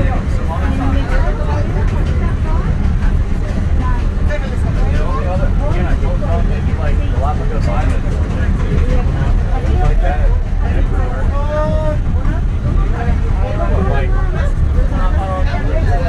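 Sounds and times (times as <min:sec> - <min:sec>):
passengers chatting: 0:00.0 - 0:16.0
train rumble from inside carriage: 0:00.0 - 0:16.0.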